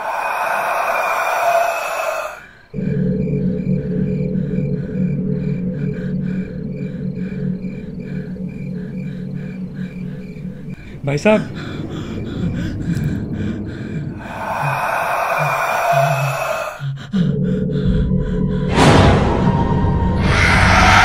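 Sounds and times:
low sustained drone: 0:02.6 - 0:21.0
suspense music with steady pulse: 0:02.6 - 0:21.0.

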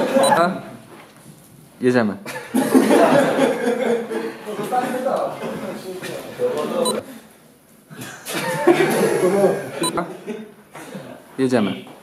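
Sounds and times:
people talking: 0:04.5 - 0:07.0.

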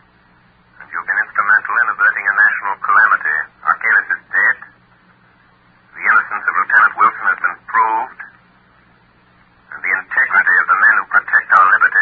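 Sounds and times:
faint steady hum: 0:00.0 - 0:12.0
radio drama voices: 0:00.8 - 0:04.8, 0:05.8 - 0:08.5, 0:09.6 - 0:12.0.

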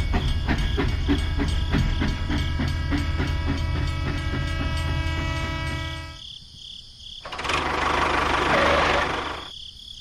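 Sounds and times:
toy train chugging: 0:00.0 - 0:06.2, 0:07.3 - 0:09.5.

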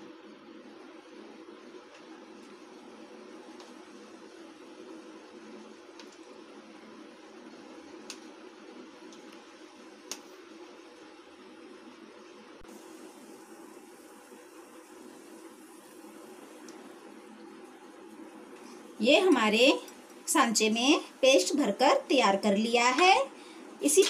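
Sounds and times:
faint room hum: 0:00.0 - 0:24.0.

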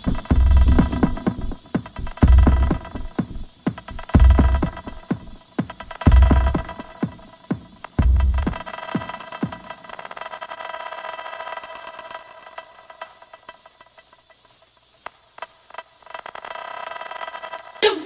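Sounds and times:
techno kick drum: 0:00.0 - 0:09.8
faint hiss: 0:00.0 - 0:18.0.

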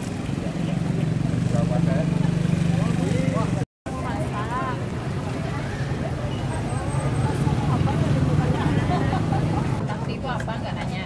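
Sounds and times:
motorcycle engines idling: 0:00.0 - 0:04.5
crowd chatter: 0:00.0 - 0:11.0.

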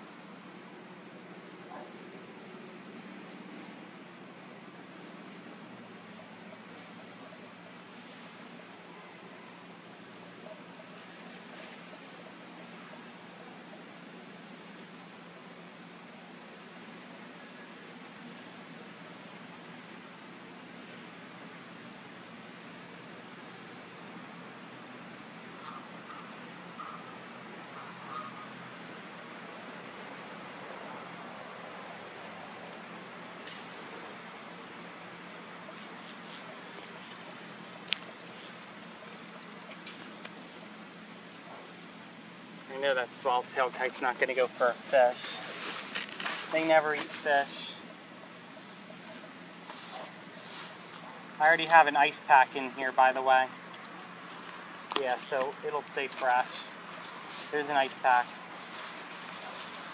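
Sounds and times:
insects trilling: 0:00.0 - 0:59.9
soft background hiss: 0:00.0 - 0:59.9.

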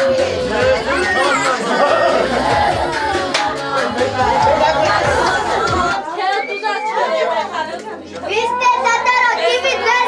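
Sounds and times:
party music with bass line: 0:00.0 - 0:06.0
women and children talking: 0:00.0 - 0:10.0.

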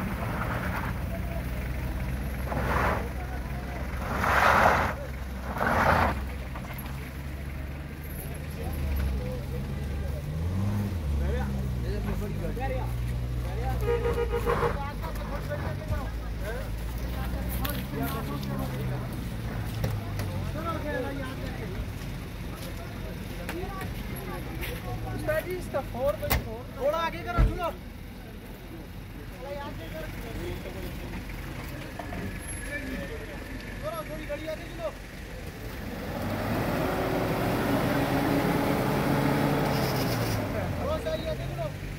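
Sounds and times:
car engine revving: 0:00.0 - 0:06.7, 0:08.4 - 0:15.2, 0:34.5 - 0:41.4
vehicle engine running: 0:00.0 - 0:41.9
people talking: 0:00.7 - 0:35.8, 0:39.8 - 0:41.8.

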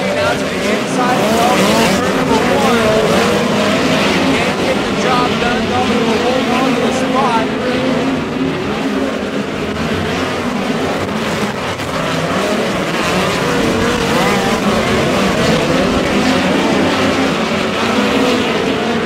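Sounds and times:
race car engines passing by: 0:00.0 - 0:19.0.

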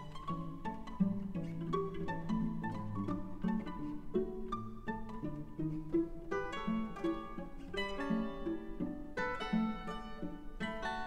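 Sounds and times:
mandolin trio playing ragtime: 0:00.0 - 0:11.0.

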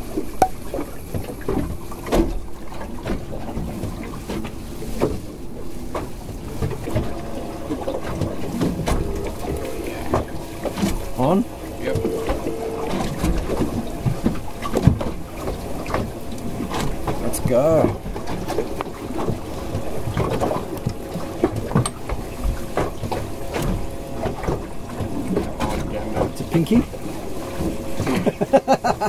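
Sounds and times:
water around boat: 0:00.0 - 0:29.0
wind: 0:00.0 - 0:29.0.

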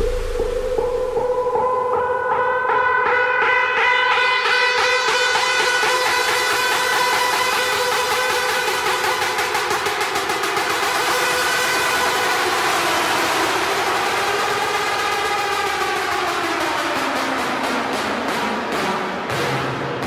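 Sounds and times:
synth sweep: 0:00.0 - 0:01.6
hard dance music: 0:00.0 - 0:20.0.

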